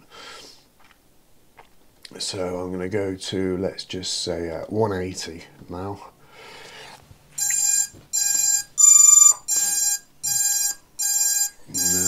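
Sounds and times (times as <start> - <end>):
short electronic beeps: 7.4 - 12.0.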